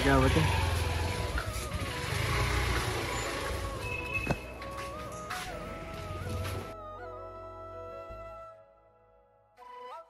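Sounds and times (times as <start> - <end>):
motorbike engine rumble: 0.0 - 6.8
slow melodic background music: 0.0 - 10.0.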